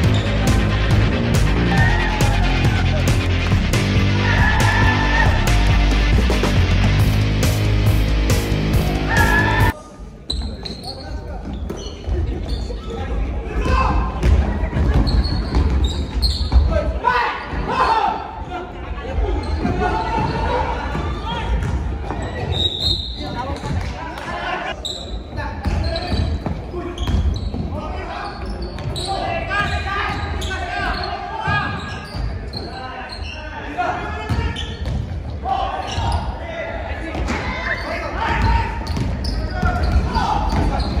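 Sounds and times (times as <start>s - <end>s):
indistinct shouts and chatter: 0.0s - 7.1s, 8.5s - 10.2s.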